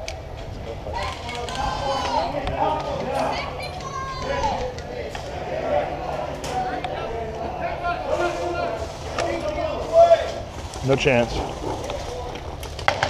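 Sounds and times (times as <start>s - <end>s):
people talking: 0.5s - 12.6s.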